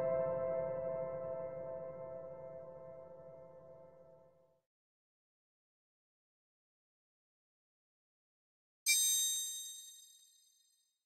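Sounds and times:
bright metallic chime: 8.9s - 10.8s.

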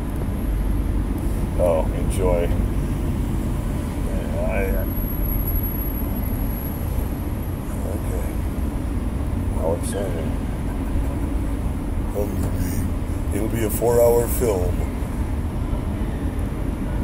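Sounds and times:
car cabin rumble: 0.0s - 17.0s.

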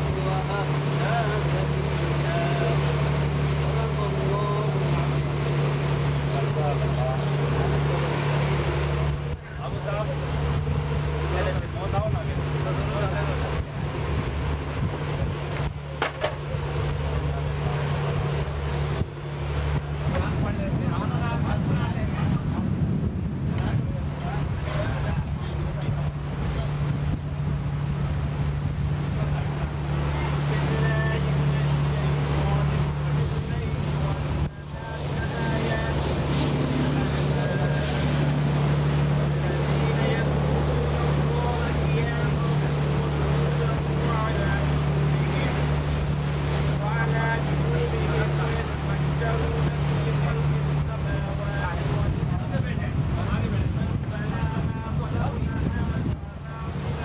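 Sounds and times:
boat engine droning: 0.0s - 57.0s.

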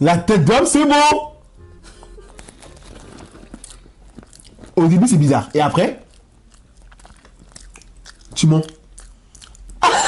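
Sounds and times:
low room hum: 0.0s - 10.0s
person chewing food: 2.1s - 10.0s.

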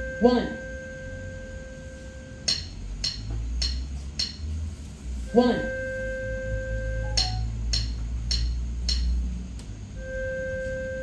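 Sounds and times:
digital piano notes: 5.4s - 9.1s.

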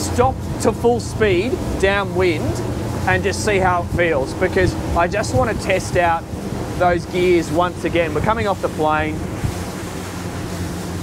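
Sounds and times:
outboard motors humming: 0.0s - 11.0s
wind and water rushing: 0.0s - 11.0s.

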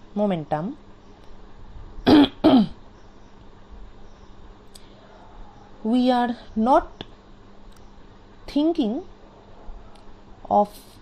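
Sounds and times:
person coughing: 2.1s - 2.8s.

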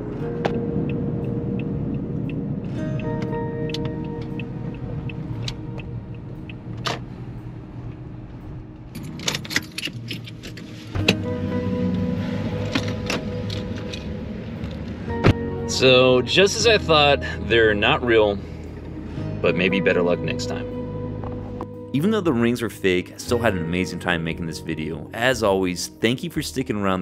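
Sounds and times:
background music with held notes: 0.0s - 8.8s, 10.4s - 27.0s
car road and engine noise: 0.0s - 25.3s.

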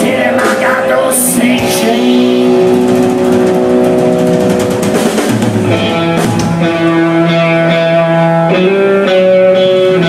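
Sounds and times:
sustained electric guitar chord: 1.2s - 10.0s.

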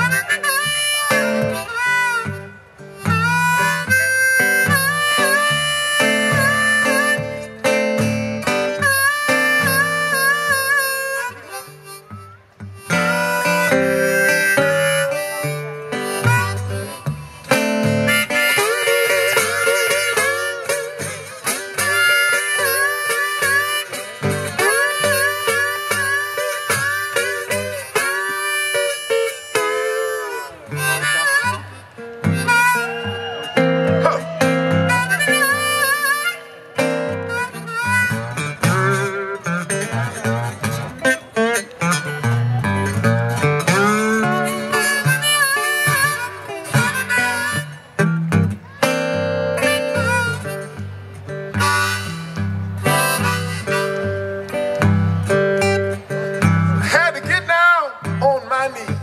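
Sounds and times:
blues harmonica solo: 0.0s - 59.0s
resonator guitar: 0.0s - 59.0s.

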